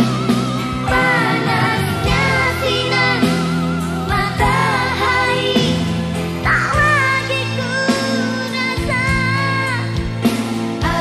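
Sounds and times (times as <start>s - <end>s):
sustained backing notes: 0.0s - 6.4s
pop ballad singing: 0.0s - 11.0s.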